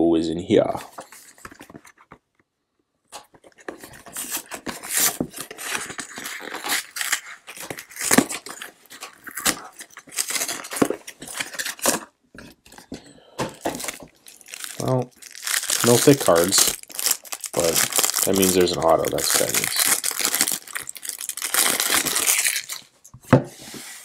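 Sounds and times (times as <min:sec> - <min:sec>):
cardboard box tearing: 0:03.6 - 0:12.1
cellophane crackling: 0:03.6 - 0:12.8, 0:13.5 - 0:23.1.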